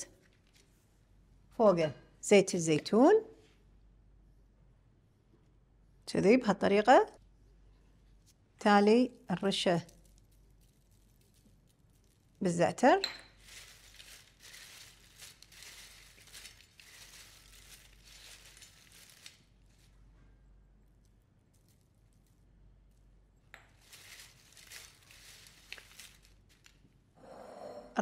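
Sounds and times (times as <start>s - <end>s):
crackling rustle of toasted bread: 9.7s - 12.4s, 13.3s - 20.2s, 20.8s - 23.1s, 23.8s - 26.9s.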